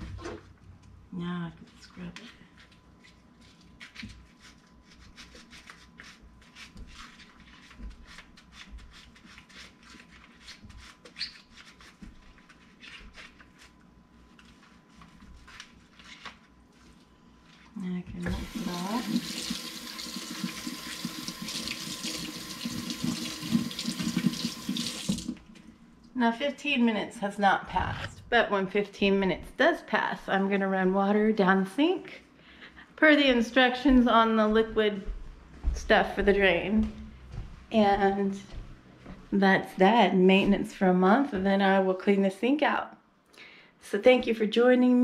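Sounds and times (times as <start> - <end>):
water running into sink: 18.2 - 25.4.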